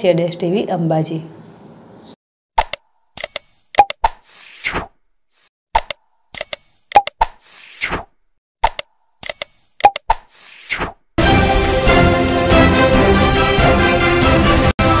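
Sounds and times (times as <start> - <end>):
sharp clicks: 2.6 - 4.2, 5.8 - 7.4, 8.6 - 10.3
pop sound effect: 2.6 - 4.8, 5.8 - 8.0, 8.6 - 11.0.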